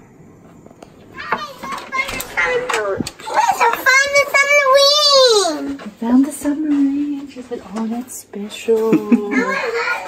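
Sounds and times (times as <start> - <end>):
small child babbling: 9.4 - 10.0.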